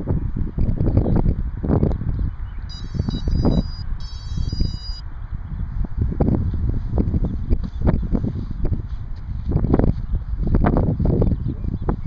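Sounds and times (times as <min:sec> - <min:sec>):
wind gusting on microphone: 0:00.0 - 0:12.0
electronic beeps changing pitch: 0:02.7 - 0:05.0.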